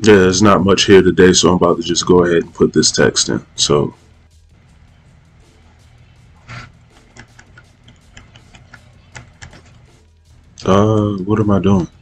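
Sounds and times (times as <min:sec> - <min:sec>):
steady low hum: 0:00.0 - 0:12.0
keyboard and mouse clicks: 0:07.0 - 0:09.8.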